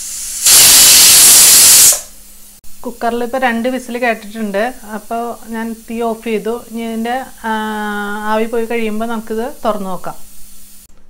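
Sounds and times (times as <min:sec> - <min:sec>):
person talking: 0:02.8 - 0:10.3.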